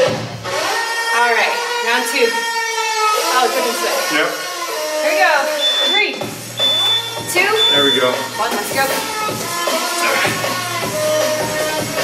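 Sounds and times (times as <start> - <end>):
background music: 0.0 - 12.0
timer beeping: 5.6 - 8.2.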